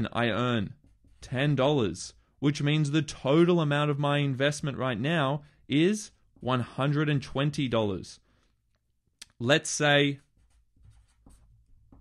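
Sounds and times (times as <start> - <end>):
marker scratching on paper: 0.7 - 1.6, 10.2 - 12.0.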